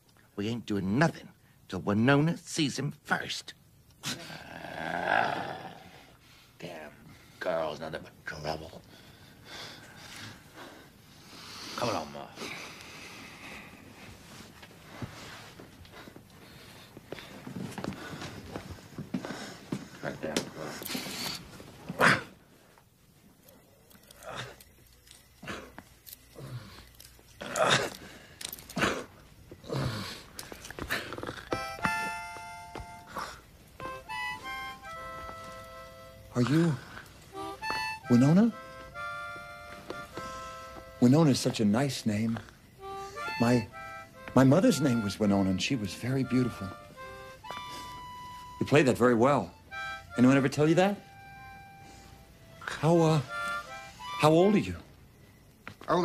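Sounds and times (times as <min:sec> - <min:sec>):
breathy noises: 0:04.0 - 0:07.7, 0:08.6 - 0:55.8
growling vocal roar: 0:04.3 - 0:06.0
harmonica chord: 0:31.5 - 0:42.0, 0:42.7 - 0:54.9.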